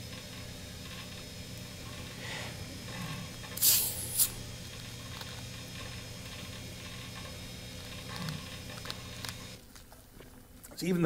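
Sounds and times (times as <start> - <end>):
faint hiss: 3.6 - 4.4.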